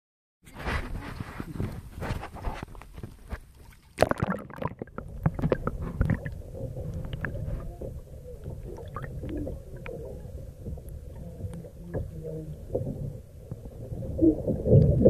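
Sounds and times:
splashing clicks and crackles: 0:01.5 - 0:13.9
muffled underwater rumble: 0:04.0 - 0:15.0.

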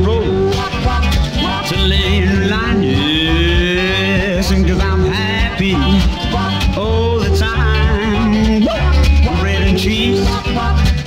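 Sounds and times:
pop band music with heavy bass: 0:00.0 - 0:11.0.

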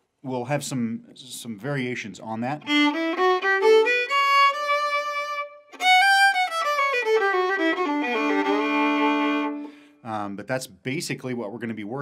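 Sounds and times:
solo fiddle bowing a scale: 0:02.6 - 0:09.8.

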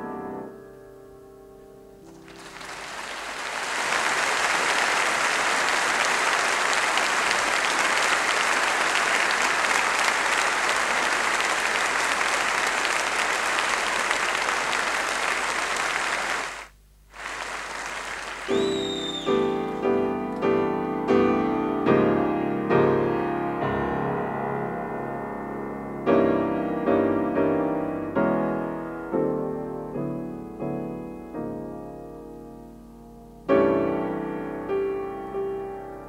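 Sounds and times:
solo piano: 0:00.0 - 0:02.7, 0:18.5 - 0:36.0
audience applauding: 0:02.1 - 0:20.5
short high whistle-like tone: 0:18.5 - 0:19.6.

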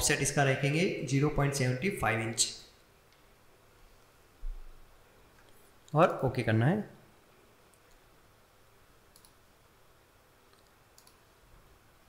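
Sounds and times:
computer mouse clicks: 0:09.1 - 0:09.4, 0:10.5 - 0:11.2.

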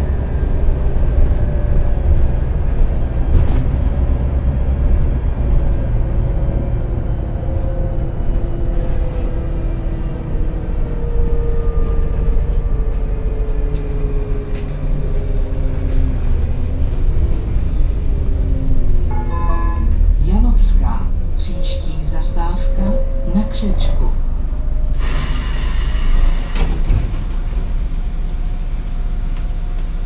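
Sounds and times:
bus engine rumble: 0:00.0 - 0:30.0.

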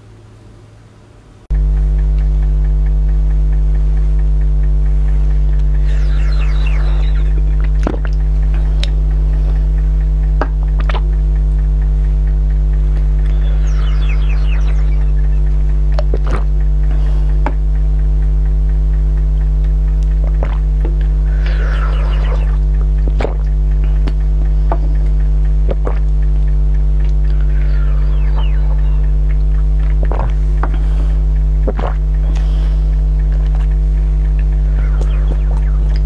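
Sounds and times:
deep electrical mains hum: 0:00.0 - 0:36.0
sharp clicks: 0:01.5 - 0:36.0.

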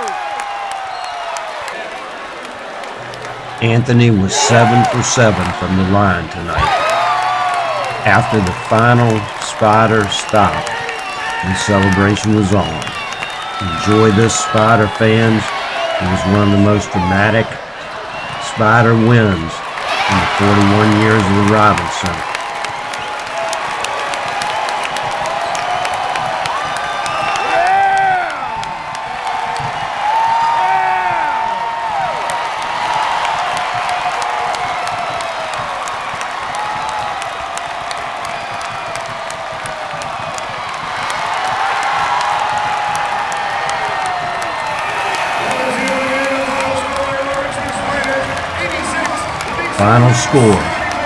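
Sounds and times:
crowd cheering and clapping: 0:00.0 - 0:51.0.

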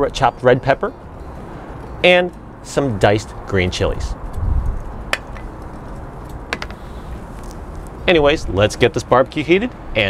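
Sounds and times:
city background noise: 0:00.0 - 0:10.0.

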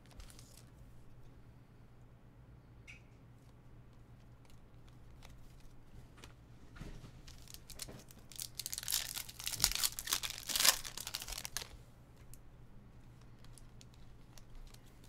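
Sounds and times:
plastic wrapper crinkling: 0:00.0 - 0:00.7, 0:07.2 - 0:12.4, 0:13.2 - 0:15.0.

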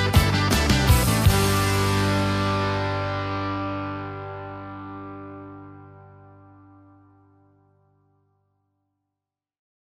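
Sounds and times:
distorted electric guitar chord: 0:00.0 - 0:08.5.

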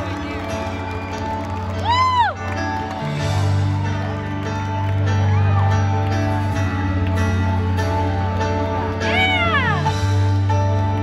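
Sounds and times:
live rock band music: 0:00.0 - 0:11.0.

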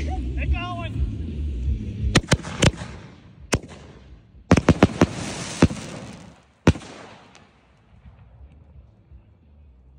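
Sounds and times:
fireworks bangs: 0:02.2 - 0:08.2.

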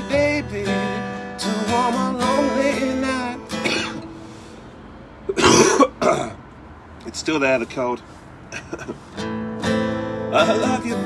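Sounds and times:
acoustic guitar ringing: 0:00.0 - 0:06.4, 0:08.6 - 0:11.0
man coughing: 0:03.6 - 0:04.1, 0:05.3 - 0:06.4, 0:08.5 - 0:09.0.

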